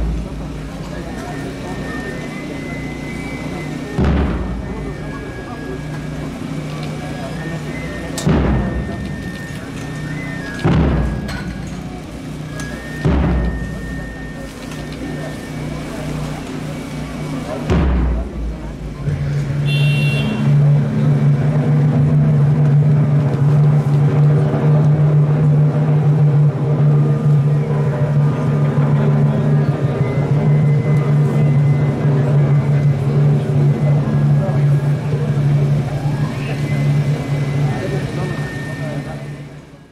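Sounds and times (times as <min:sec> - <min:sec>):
engine humming steadily: 0:00.0 - 0:39.9
voices: 0:00.0 - 0:39.9.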